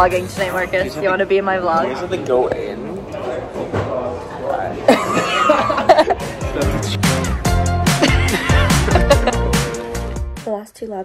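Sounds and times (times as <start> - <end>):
voices at table: 0.0 - 7.0
young woman laughing: 4.9 - 6.2, 7.9 - 9.6.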